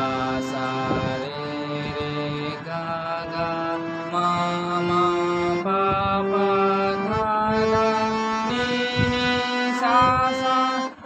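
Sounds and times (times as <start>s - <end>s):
harmonium: 0.0s - 11.0s
man singing notes: 0.0s - 11.0s.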